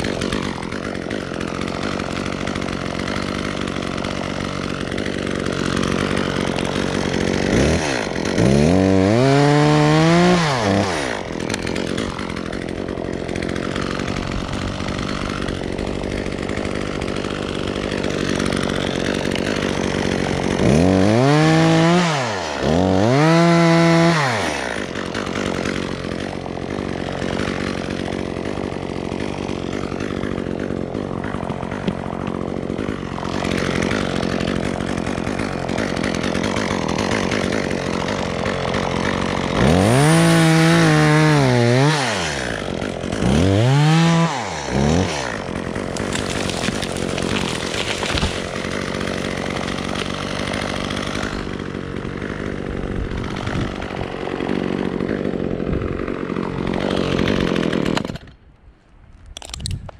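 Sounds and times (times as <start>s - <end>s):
chainsaw idling and revving: 0.0s - 58.6s.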